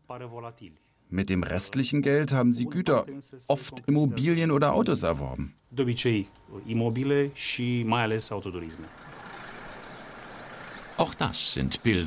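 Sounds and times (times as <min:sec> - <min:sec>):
street traffic rushing: 0:06.4 - 0:12.0.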